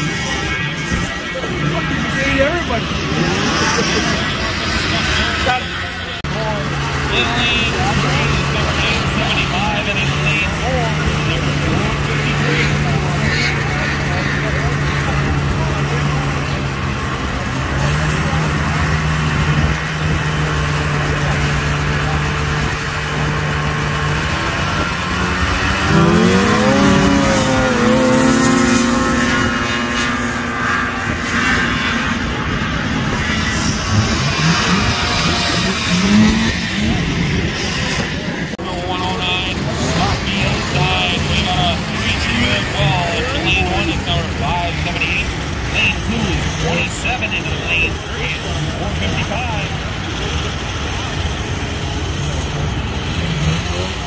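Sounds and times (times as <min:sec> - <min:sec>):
snowmobile engines idling and revving: 0:00.0 - 0:54.0.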